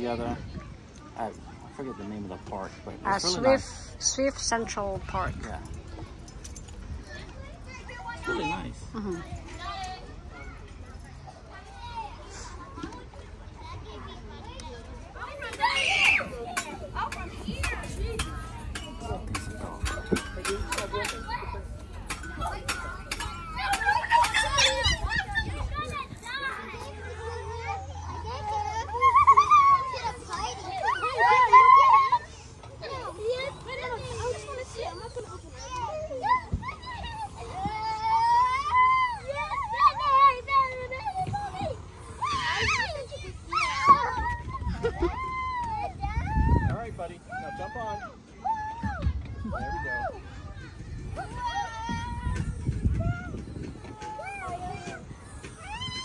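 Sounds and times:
children playing and calling out: 0.0s - 56.0s
loud high shout: 30.8s - 32.3s.

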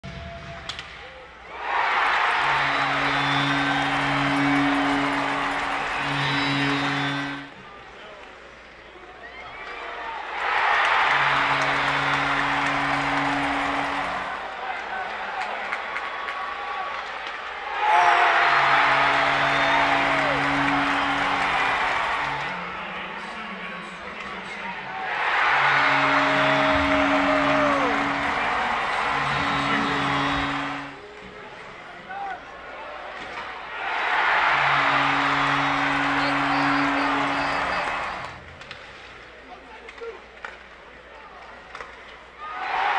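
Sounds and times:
loud crowd cheering: 0.0s - 7.9s, 9.0s - 38.8s, 42.3s - 42.9s
arena goal horn blasts: 1.9s - 7.6s, 10.8s - 14.5s, 18.0s - 22.8s, 25.2s - 31.1s, 34.2s - 38.4s.

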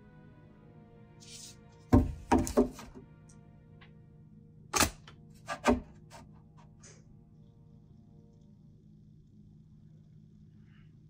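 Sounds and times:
faint steady hum: 2.9s - 11.0s.

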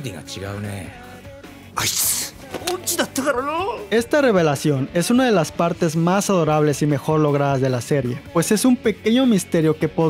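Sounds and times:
man speaking animatedly: 0.0s - 1.0s, 1.8s - 10.0s.

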